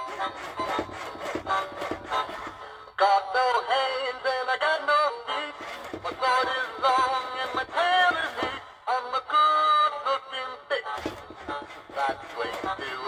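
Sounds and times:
recorded voice singing: 0:00.0 - 0:13.0
toy playing instrumental music: 0:00.0 - 0:13.0.

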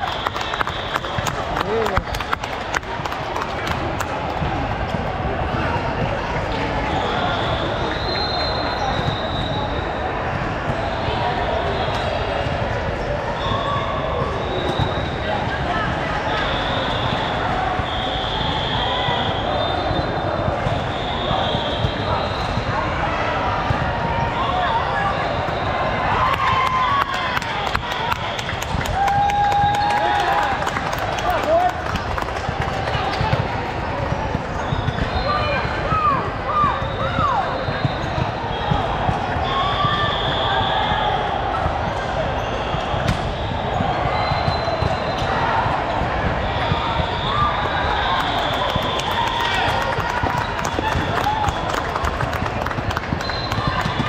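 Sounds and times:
murmur of voices: 0:00.0 - 0:54.0
volleyballs hit and bouncing: 0:00.0 - 0:54.0
sneakers squeaking: 0:05.4 - 0:26.6, 0:33.0 - 0:54.0.

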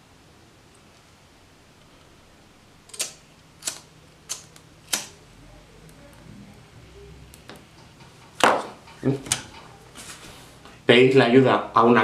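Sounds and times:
sharp clicks: 0:02.9 - 0:05.2.

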